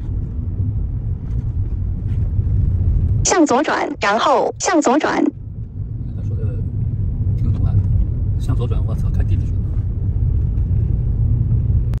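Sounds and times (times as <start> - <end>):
car engine rumble from inside: 0.0 - 3.3, 5.4 - 12.0.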